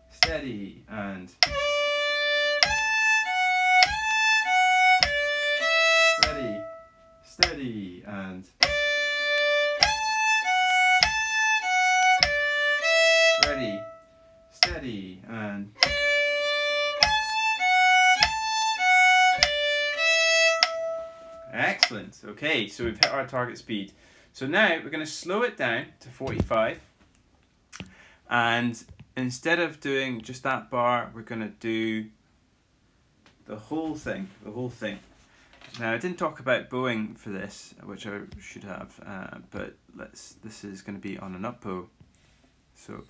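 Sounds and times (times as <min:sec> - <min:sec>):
person counting in: 0:00.0 - 0:01.8, 0:06.2 - 0:09.0, 0:13.4 - 0:14.0, 0:14.6 - 0:16.1, 0:21.5 - 0:23.2
fiddle playing folk tune: 0:01.4 - 0:07.6, 0:08.6 - 0:14.8, 0:15.8 - 0:22.0.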